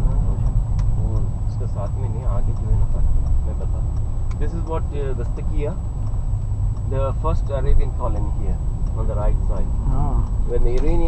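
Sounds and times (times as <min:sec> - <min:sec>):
car driving rumble from inside: 0:00.0 - 0:11.0
voices talking: 0:06.8 - 0:11.0.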